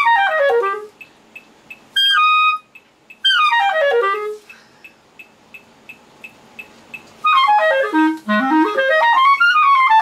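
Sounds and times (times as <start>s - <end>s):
clarinet playing: 0.0s - 1.0s, 2.0s - 4.5s, 7.2s - 10.0s.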